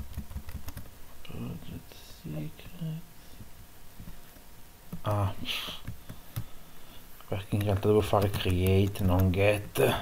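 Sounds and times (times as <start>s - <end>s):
keyboard keystrokes: 0.0s - 0.9s, 7.6s - 9.4s.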